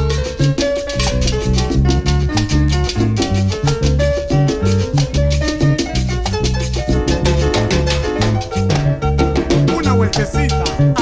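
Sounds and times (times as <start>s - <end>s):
instrumental salsa music: 0.0s - 11.0s.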